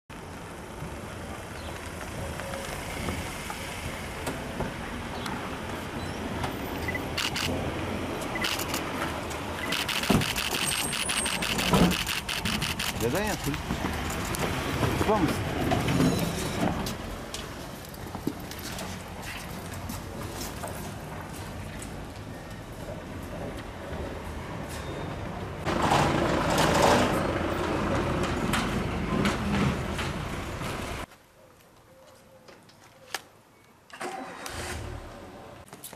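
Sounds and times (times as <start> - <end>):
sharp clicks: 7.0 - 7.6, 8.3 - 8.9, 9.6 - 13.6.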